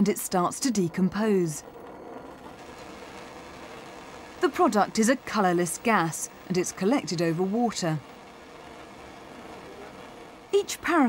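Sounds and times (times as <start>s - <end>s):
gas burner flame rushing: 0.0s - 11.0s.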